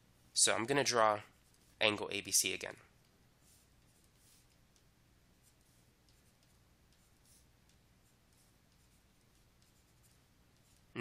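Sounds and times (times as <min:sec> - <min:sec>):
low steady hum: 0:00.0 - 0:11.0
stylus scratching on drawing tablet: 0:00.7 - 0:11.0.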